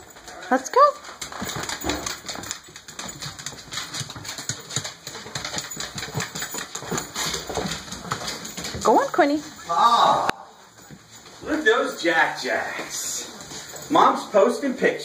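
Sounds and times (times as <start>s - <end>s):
dog claws clicking on wood floor: 0.0s - 9.5s.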